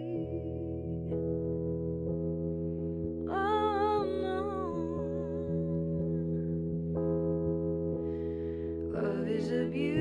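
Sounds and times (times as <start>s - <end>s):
woman singing wordless vocal: 0.0s - 1.2s, 3.3s - 6.1s, 8.9s - 10.0s.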